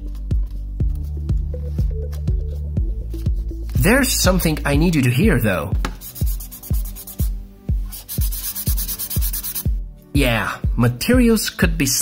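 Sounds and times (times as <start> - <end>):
electronic music with steady beat: 0.0 - 9.9.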